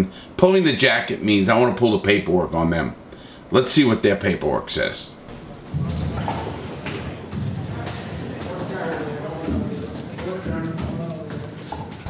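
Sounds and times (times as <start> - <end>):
men's voices: 3.8 - 12.0.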